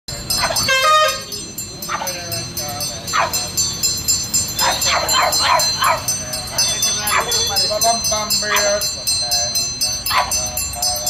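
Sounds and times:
music with jingling beat: 0.1s - 11.0s
dog barking: 0.4s - 0.7s, 1.9s - 2.2s, 3.1s - 3.4s, 4.6s - 7.5s, 8.5s - 8.7s, 10.1s - 10.4s.

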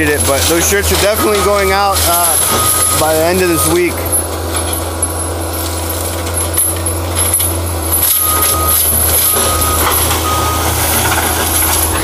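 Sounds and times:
diesel engine running: 0.0s - 12.0s
reversing alarm beeps: 0.9s - 4.2s, 7.9s - 11.9s.

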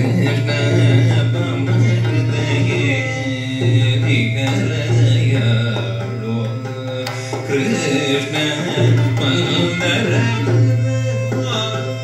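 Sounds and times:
tambura drone: 0.0s - 12.0s
violin accompaniment: 0.0s - 12.0s.

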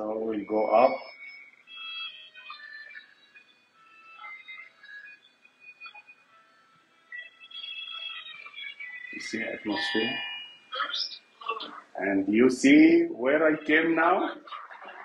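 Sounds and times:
elevator music from a speaker: 0.0s - 15.0s.

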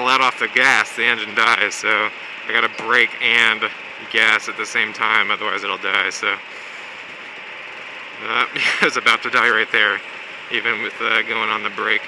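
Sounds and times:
go-kart engine running low: 0.0s - 12.0s.

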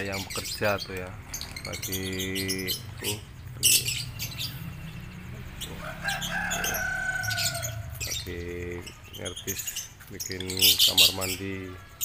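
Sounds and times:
lovebirds chirping: 0.0s - 12.0s
long held bird call: 1.4s - 10.0s.

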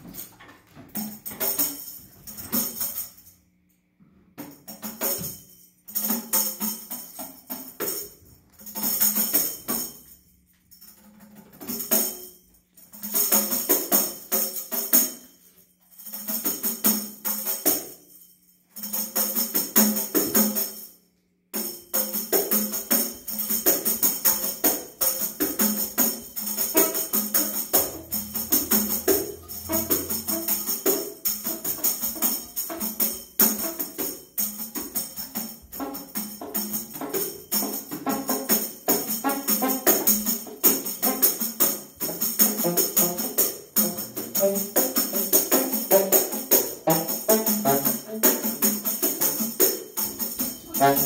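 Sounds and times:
tambourine jingling: 0.0s - 51.0s.

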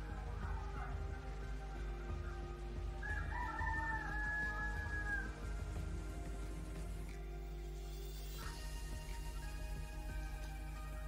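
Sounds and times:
background music: 0.0s - 11.0s
rooster crowing: 2.2s - 5.8s.

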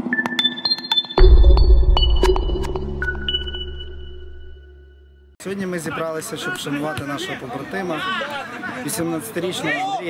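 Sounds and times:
deep bass hit: 1.2s - 5.4s.

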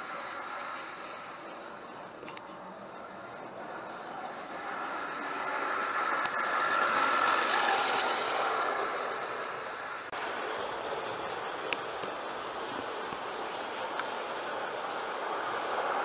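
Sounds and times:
model train motor whirring: 0.0s - 16.0s
wheels running on rails: 0.0s - 16.0s.

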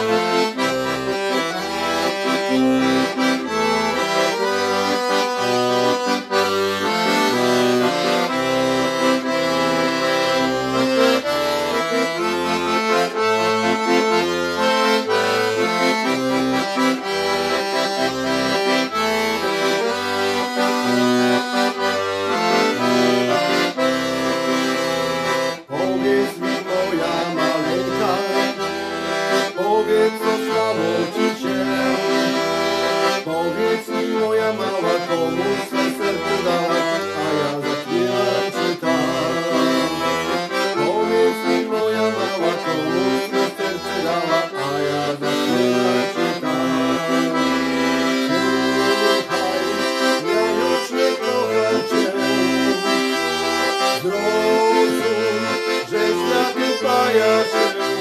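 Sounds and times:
piano accordion melody: 0.0s - 58.0s.

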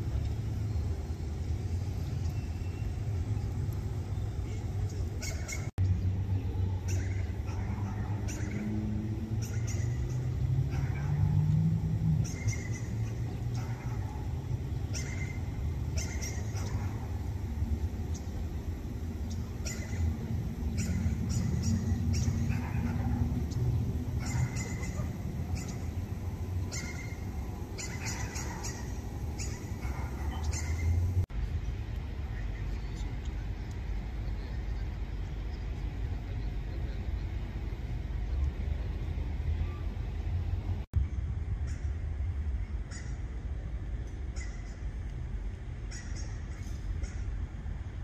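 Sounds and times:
low street rumble: 0.0s - 48.0s.

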